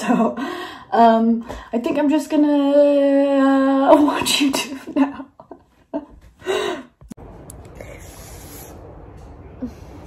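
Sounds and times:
woman gasping: 0:06.4 - 0:07.0.

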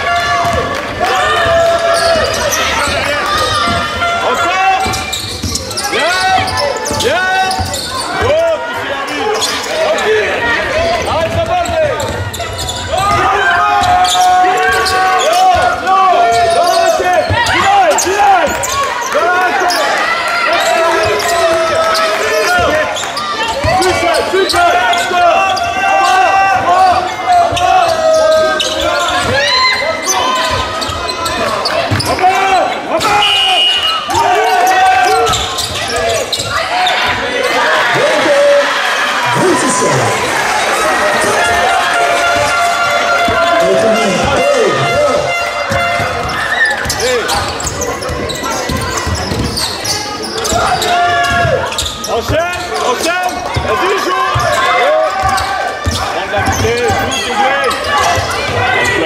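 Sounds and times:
voices: 0:00.0 - 0:59.0
sneakers squeaking on court: 0:01.5 - 0:08.4, 0:09.0 - 0:10.2, 0:10.8 - 0:13.1, 0:13.8 - 0:15.7, 0:16.4 - 0:18.9, 0:27.3 - 0:29.4, 0:30.0 - 0:32.2, 0:34.6 - 0:37.6, 0:42.3 - 0:53.7, 0:54.3 - 0:59.0
basketball dribbling: 0:42.3 - 0:52.6, 0:55.2 - 0:57.1.

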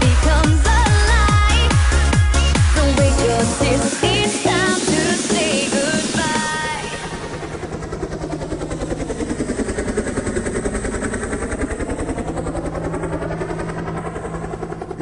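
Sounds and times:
helicopter rotor chopping: 0:00.0 - 0:15.0.

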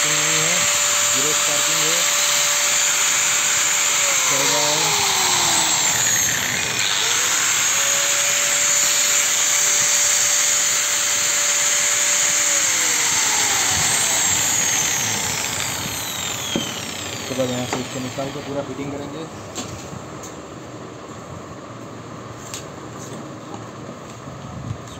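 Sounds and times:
angle grinder running: 0:00.0 - 0:19.0.

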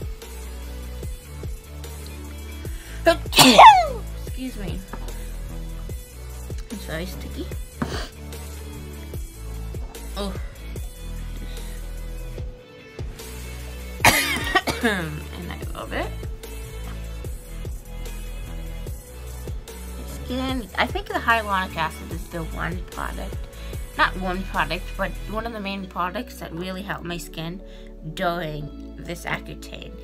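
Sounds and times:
music with steady beat: 0:00.0 - 0:26.2
woman coughing: 0:03.1 - 0:04.0, 0:07.8 - 0:08.2, 0:14.0 - 0:15.4
woman sneezing: 0:03.1 - 0:04.1, 0:14.1 - 0:15.1.

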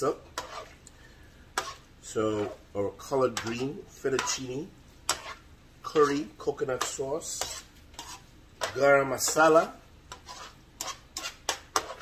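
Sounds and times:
utensil scraping a pan: 0:00.0 - 0:00.8, 0:01.5 - 0:12.0.

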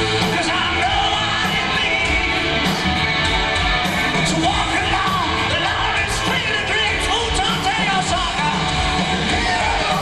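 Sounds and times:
electric guitar: 0:00.0 - 0:10.0
hard rock band playing: 0:00.0 - 0:10.0.

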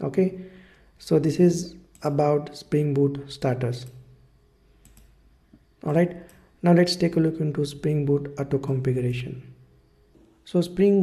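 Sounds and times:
faint mouse clicks: 0:04.8 - 0:05.6.

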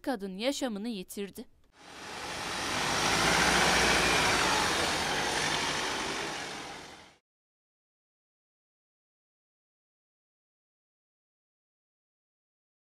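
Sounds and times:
van driving past: 0:01.8 - 0:07.2.

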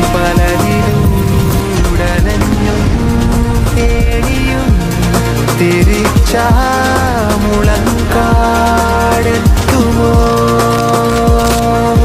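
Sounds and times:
synth chords: 0:00.0 - 0:10.5
deep kick drum: 0:00.4 - 0:08.6.

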